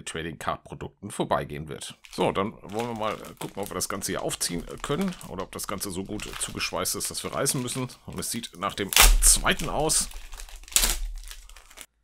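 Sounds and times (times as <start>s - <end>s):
plastic wrapping tearing and crinkling: 2.0s - 12.0s.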